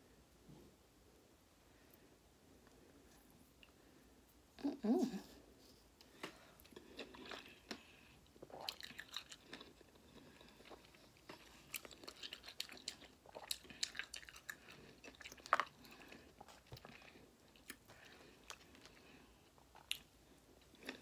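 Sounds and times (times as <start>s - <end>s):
chewing and biting citrus wedges: 8.4s - 19.0s.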